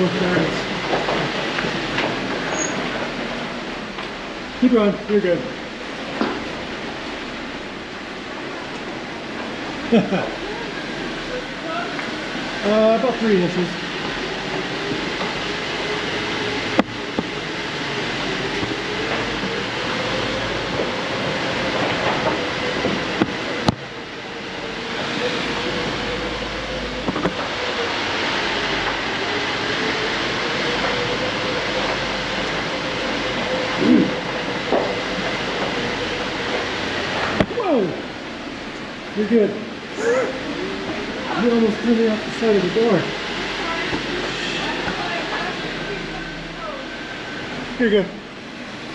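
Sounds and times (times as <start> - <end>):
off-road vehicle engine rumble: 0.0 - 48.9.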